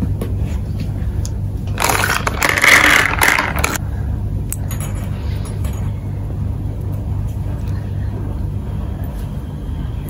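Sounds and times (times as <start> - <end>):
low background rumble: 0.0 - 10.0
plastic toys clicking: 1.8 - 3.8.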